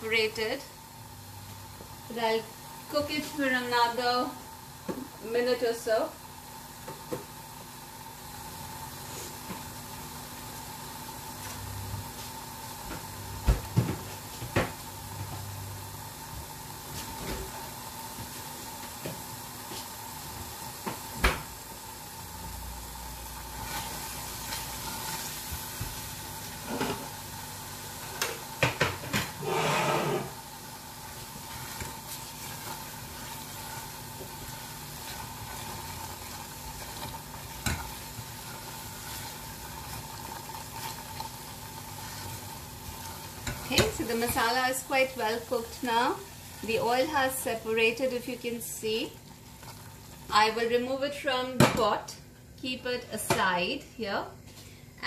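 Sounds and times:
paste sizzling in oil: 0:15.8 - 0:50.6
spatula scraping saucepan: 0:29.3 - 0:30.4.

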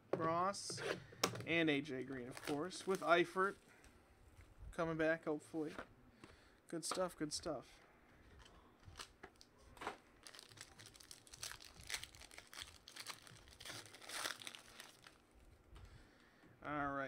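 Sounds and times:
plastic wrapper crinkling and tearing: 0:02.1 - 0:03.6, 0:08.4 - 0:09.5, 0:10.2 - 0:15.2.

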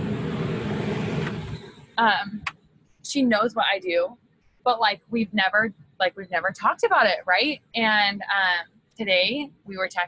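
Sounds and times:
loud steady rumbling: 0:00.0 - 0:02.5.

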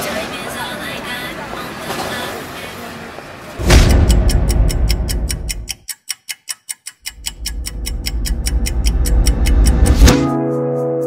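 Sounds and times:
loud deep rumble: 0:03.6 - 0:05.7
clock ticking quickly: 0:03.6 - 0:10.2.

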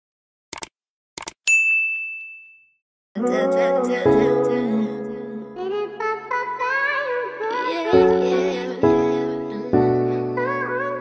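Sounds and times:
short clicks: 0:00.5 - 0:01.4
notification bell ding: 0:01.5 - 0:02.8.

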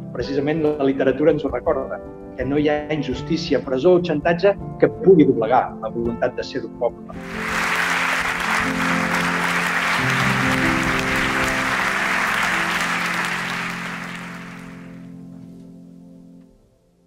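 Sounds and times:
music with slow sustained notes: 0:00.0 - 0:17.0
audience applauding: 0:07.1 - 0:15.1.

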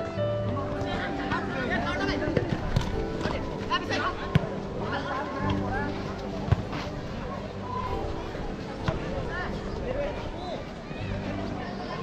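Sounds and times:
background music: 0:00.0 - 0:12.0
ball being kicked: 0:04.3 - 0:04.6.

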